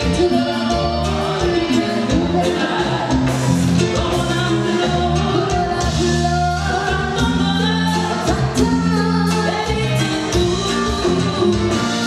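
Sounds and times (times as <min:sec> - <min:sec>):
woman singing into a microphone: 0:00.0 - 0:03.2, 0:04.0 - 0:12.0
live band music: 0:00.0 - 0:12.0.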